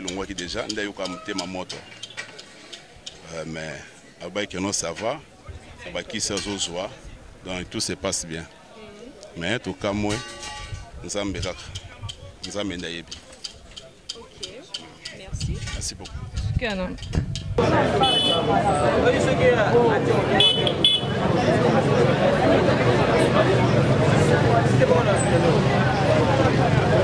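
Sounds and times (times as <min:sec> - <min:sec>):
man speaking: 0:00.0 - 0:01.8, 0:11.0 - 0:13.2
crowd noise: 0:00.0 - 0:27.0
murmur of voices: 0:00.0 - 0:27.0.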